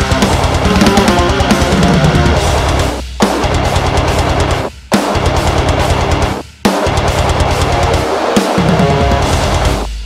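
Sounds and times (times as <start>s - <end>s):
heavy metal electric guitar riffing: 0.0s - 9.8s
drum backing: 0.0s - 10.0s.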